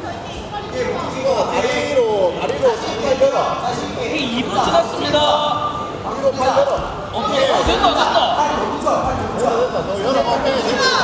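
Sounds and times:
voices calling out in a hall: 0.0s - 11.0s.

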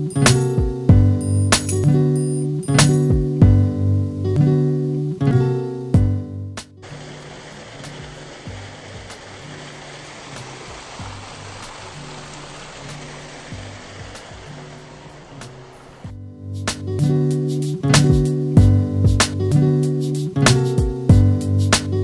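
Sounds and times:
quiet guitar music with beat: 0.0s - 12.1s, 12.8s - 22.0s
waterfall rushing: 6.8s - 16.1s.

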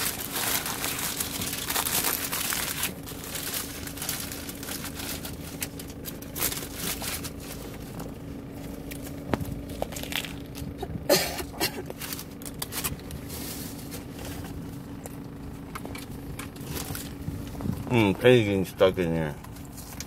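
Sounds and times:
paper wrapper crinkling: 0.0s - 10.7s
steady low hum: 0.0s - 20.0s.

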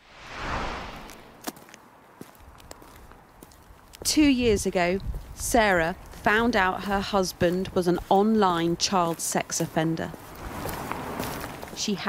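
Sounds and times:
wind rumbling on microphone: 0.0s - 1.7s, 2.3s - 8.9s, 10.0s - 11.8s.

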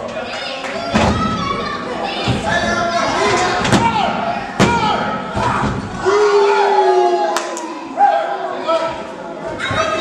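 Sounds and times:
crowd shouting: 2.5s - 10.0s.

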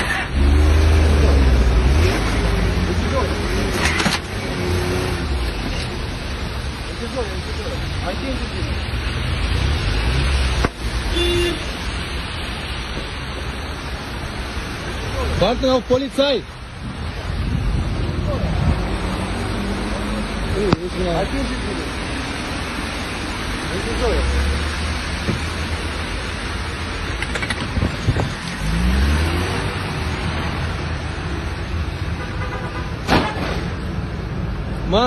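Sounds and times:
car driving off: 0.0s - 16.0s, 16.6s - 32.1s
low rumbles: 0.0s - 32.0s
tyres on wet street: 0.0s - 35.0s
rain hissing: 4.6s - 31.9s.

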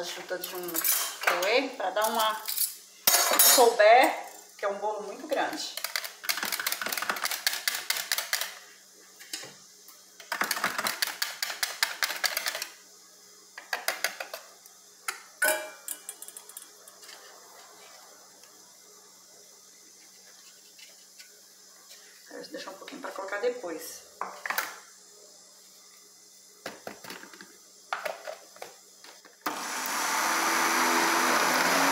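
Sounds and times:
metal bowl clinks: 15.4s - 16.1s.

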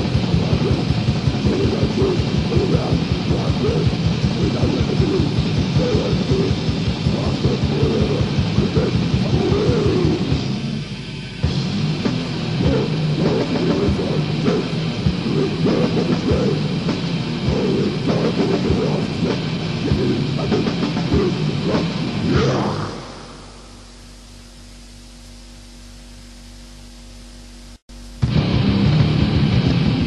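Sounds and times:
rapid kick-drum hits: 0.0s - 10.8s, 11.4s - 24.0s
death metal band playing: 0.0s - 24.2s, 28.2s - 30.0s.

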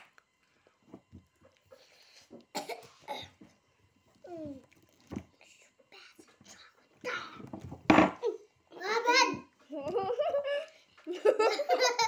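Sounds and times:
child coughing: 2.5s - 3.4s.

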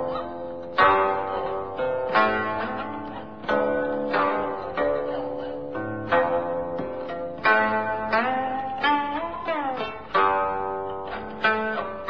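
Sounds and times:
plucked string chords: 0.0s - 12.0s.

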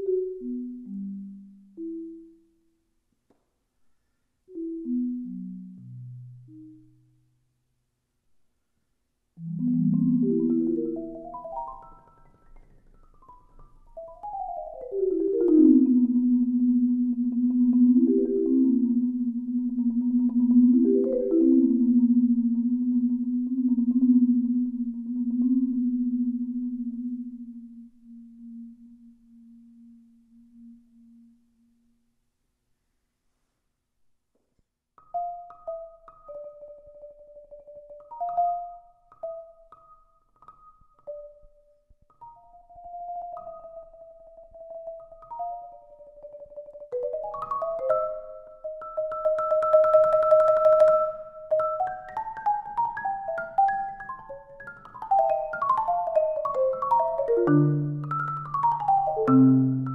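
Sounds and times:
solo marimba: 9.4s - 28.7s, 35.0s - 59.9s.

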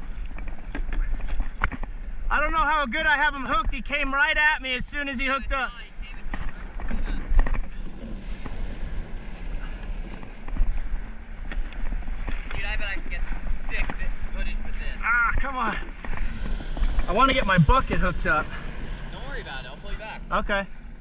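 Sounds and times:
water lapping along a hull: 0.0s - 21.0s
wind on the microphone: 4.6s - 21.0s.

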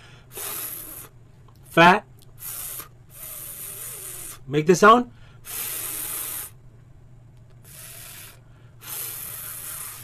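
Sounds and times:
man making hissing f sound: 0.0s - 4.5s, 5.4s - 6.6s, 7.6s - 10.0s.

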